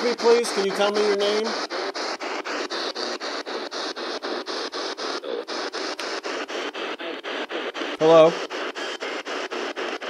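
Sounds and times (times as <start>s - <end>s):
radio static hiss sweeping: 0.0s - 10.0s.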